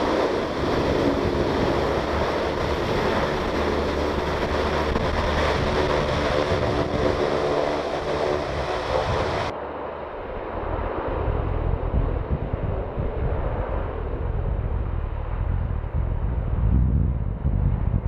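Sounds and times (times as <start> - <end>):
hovercraft roaring: 0.0 - 16.4
wind buffeting microphone: 0.0 - 18.0.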